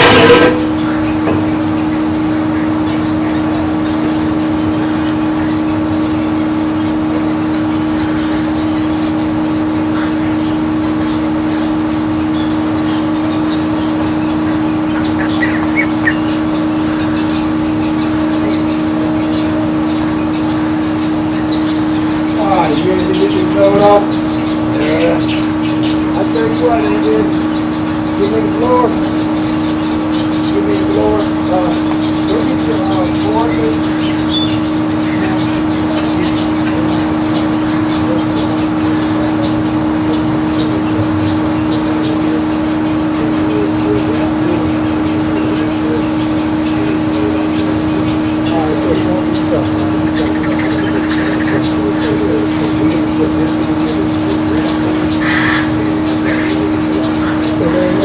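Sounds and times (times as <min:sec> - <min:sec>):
distant people talking: 0:00.0 - 0:58.0
steady low hum: 0:00.0 - 0:58.0.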